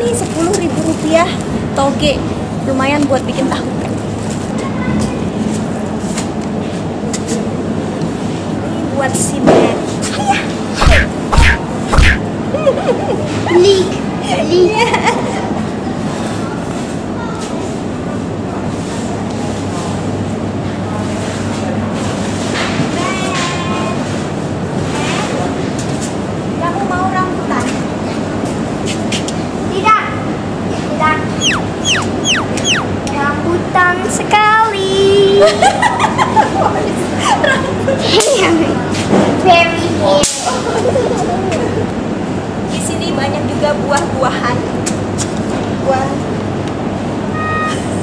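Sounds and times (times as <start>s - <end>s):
shop interior background noise: 0.0s - 48.0s
voices talking: 10.1s - 12.2s, 30.9s - 33.7s
steady low hum: 10.7s - 12.6s
sharp swish transition effect: 10.8s - 12.2s
child calling out: 31.3s - 33.0s, 47.3s - 47.9s.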